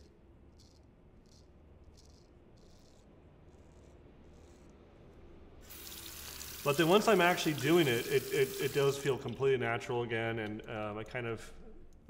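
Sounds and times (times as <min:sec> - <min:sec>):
steady hiss: 0:05.6 - 0:09.4.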